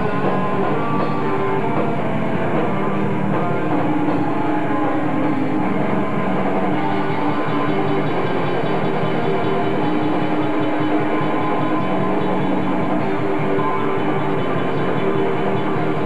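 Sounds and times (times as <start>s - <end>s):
metal band playing live: 0.0s - 16.0s.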